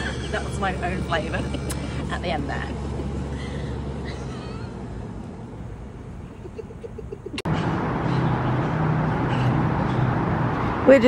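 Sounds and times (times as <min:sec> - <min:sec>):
steady low hum: 0:00.0 - 0:07.5.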